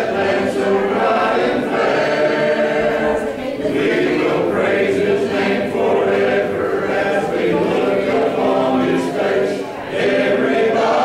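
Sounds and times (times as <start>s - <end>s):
congregation singing a hymn: 0.0s - 11.0s.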